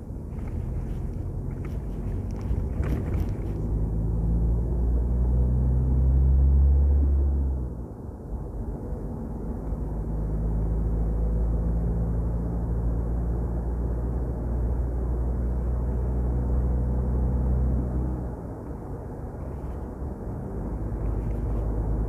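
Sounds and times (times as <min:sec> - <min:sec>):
car engine hum: 0:00.0 - 0:22.0
road noise: 0:00.0 - 0:22.0.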